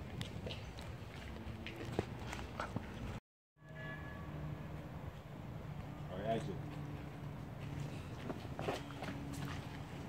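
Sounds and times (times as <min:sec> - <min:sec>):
outdoor street ambience: 0:00.0 - 0:10.0.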